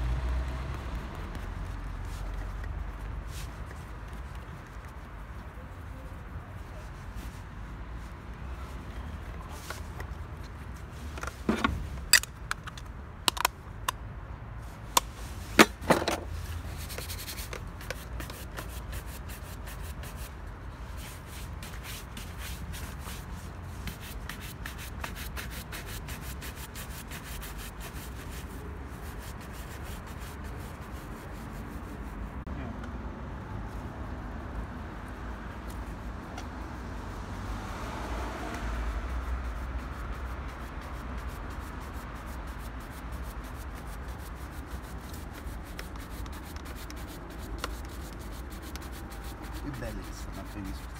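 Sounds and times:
shoe brush scrubbing leather: 0:16.4 - 0:32.4, 0:38.6 - 0:50.9.

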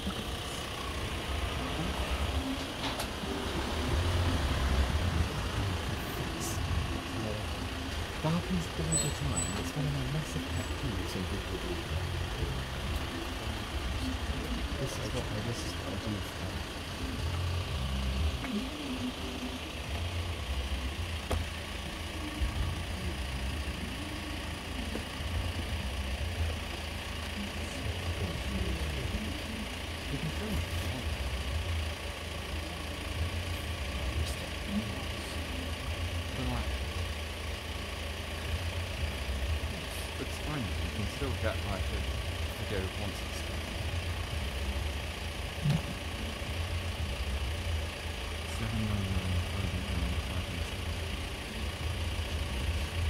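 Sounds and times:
van engine rumbling: 0:00.0 - 0:53.0.

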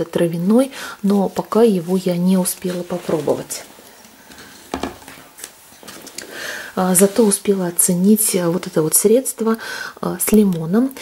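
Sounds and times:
plastic bottle knocking on shelf: 0:04.7 - 0:05.0.

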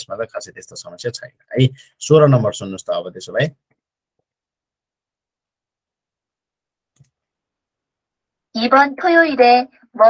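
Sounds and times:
computer mouse click: 0:06.9 - 0:07.3.

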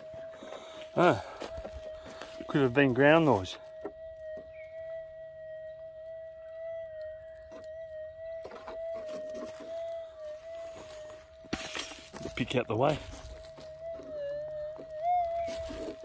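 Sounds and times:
coil scuffing on dirt: 0:00.0 - 0:03.6, 0:08.9 - 0:16.0
metal detector threshold hum: 0:00.0 - 0:16.0.

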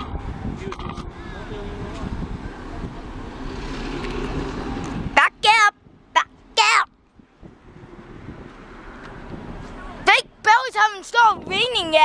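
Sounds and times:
diesel locomotive engine rumbling: 0:00.0 - 0:12.0.

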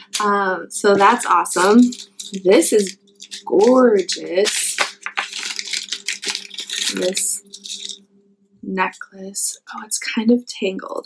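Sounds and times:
packaging rustling: 0:00.9 - 0:08.0.

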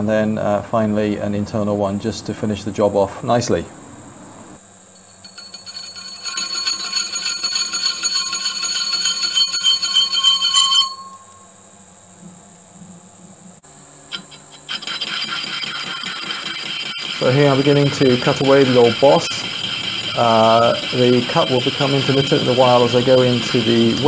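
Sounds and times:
high ringing cutting whine: 0:04.5 - 0:12.1, 0:13.6 - 0:24.0
metalworking lathe running: 0:05.0 - 0:11.3, 0:14.2 - 0:24.0.

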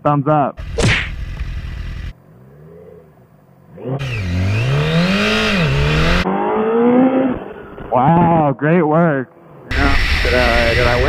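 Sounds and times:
motorcycle engine accelerating: 0:00.6 - 0:07.9.

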